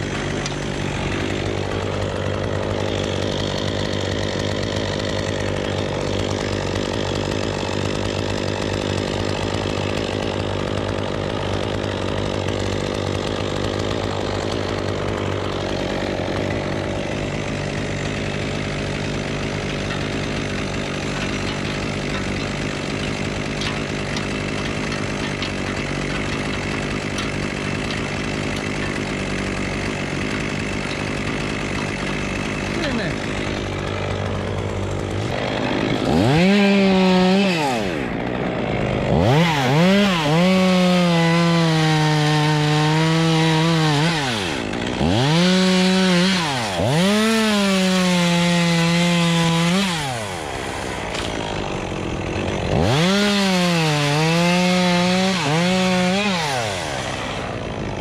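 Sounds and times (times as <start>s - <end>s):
small engine running steadily: 0.0s - 58.0s.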